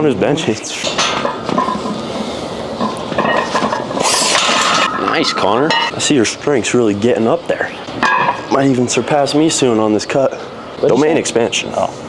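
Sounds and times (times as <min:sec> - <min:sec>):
gym background noise: 0:00.0 - 0:11.9
barbell plates clinking: 0:02.8 - 0:06.0
hissing burst: 0:04.0 - 0:04.9.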